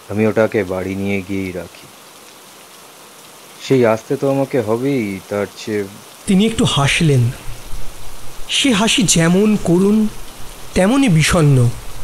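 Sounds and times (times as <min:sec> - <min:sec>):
rain falling: 0:00.0 - 0:12.0
person speaking: 0:03.6 - 0:07.8, 0:08.4 - 0:12.0.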